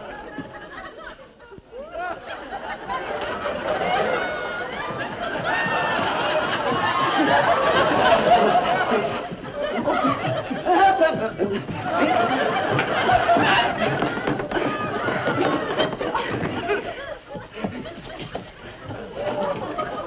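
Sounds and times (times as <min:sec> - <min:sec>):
audience laughing: 0:00.0 - 0:20.0.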